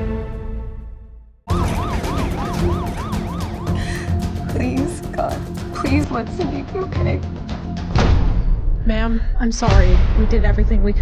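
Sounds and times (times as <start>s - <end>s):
music: 0.0s - 11.0s
siren yelping: 1.5s - 4.5s
low rumble: 3.7s - 11.0s.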